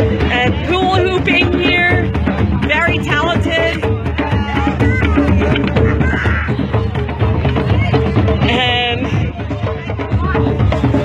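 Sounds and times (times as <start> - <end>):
hand drums playing rhythm: 0.0 - 11.0.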